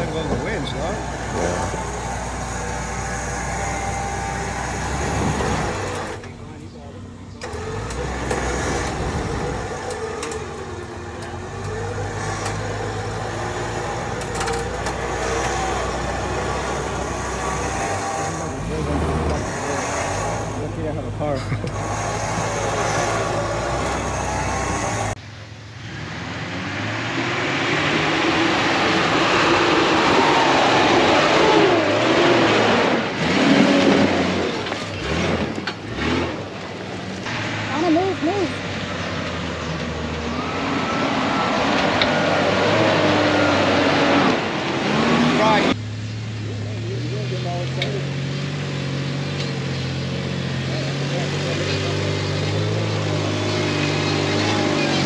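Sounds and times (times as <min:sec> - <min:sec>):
indistinct voices: 0:00.0 - 0:25.2
loud noisy vehicle: 0:00.0 - 0:55.0
off-road engines running: 0:00.0 - 0:55.0.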